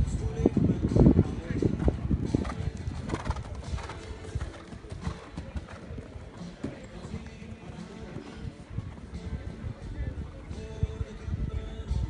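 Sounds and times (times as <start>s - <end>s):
horse hoofbeats in sand: 1.0s - 10.8s.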